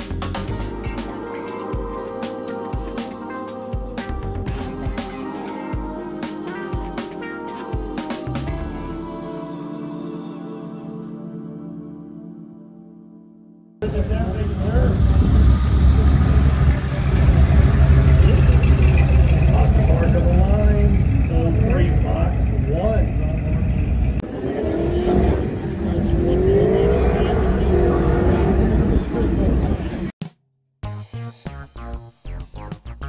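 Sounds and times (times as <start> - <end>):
people talking: 13.8 - 15.5, 16.6 - 30.1
engine rumbling: 13.8 - 30.1.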